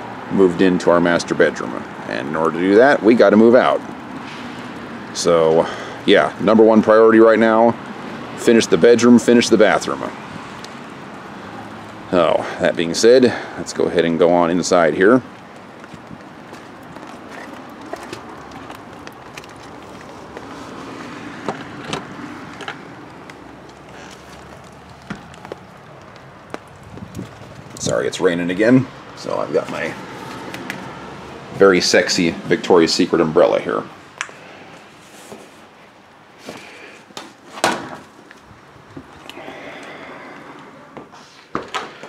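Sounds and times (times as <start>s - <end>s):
rain on an umbrella: 9.6s - 12.2s, 14.5s - 27.8s.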